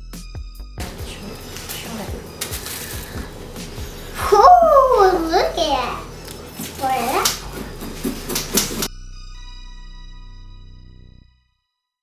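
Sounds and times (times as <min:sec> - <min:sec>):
music: 0:00.0 - 0:12.0
child's voice: 0:04.2 - 0:07.5
knife scraping inside pumpkin: 0:06.5 - 0:08.9.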